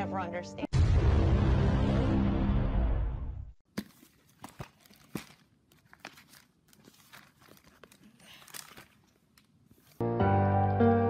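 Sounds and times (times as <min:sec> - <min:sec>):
background music: 0:00.0 - 0:03.4, 0:10.0 - 0:11.0
paper rustling: 0:03.7 - 0:10.0.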